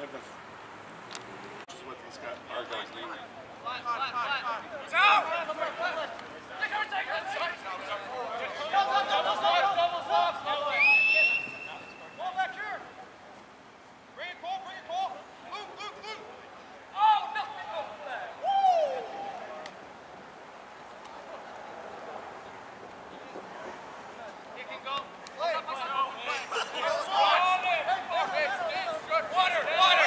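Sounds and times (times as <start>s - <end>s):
steady background hiss: 0.0s - 30.0s
players shouting: 3.7s - 13.0s, 14.2s - 19.8s, 24.7s - 30.0s
referee's whistle blast: 10.7s - 12.2s.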